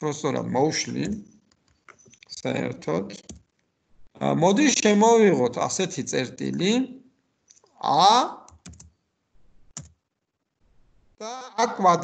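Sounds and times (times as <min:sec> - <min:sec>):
keyboard keystrokes: 0:03.1 - 0:03.5, 0:08.5 - 0:08.9, 0:09.7 - 0:10.0.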